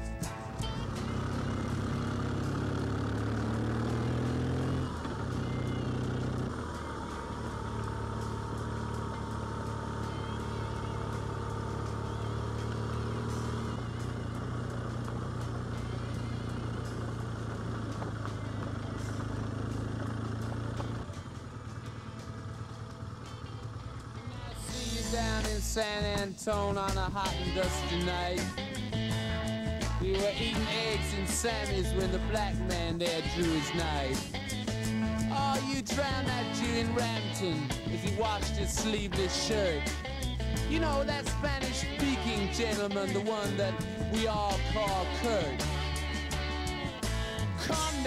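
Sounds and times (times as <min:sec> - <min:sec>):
motorcycle engine: 0:00.0 - 0:48.0.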